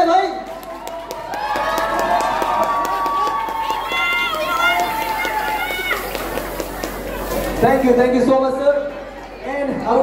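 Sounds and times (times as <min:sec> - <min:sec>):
crowd murmur: 0:00.5 - 0:10.0.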